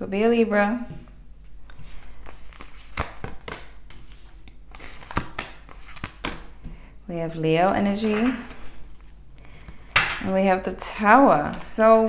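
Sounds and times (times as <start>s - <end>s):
cards rustling: 1.7s - 6.6s, 7.8s - 10.1s
cards tapping on table: 10.0s - 10.2s.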